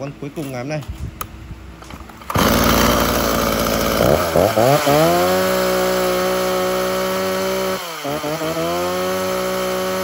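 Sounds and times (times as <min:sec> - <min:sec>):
chainsaw running at high revs: 0:02.2 - 0:10.0.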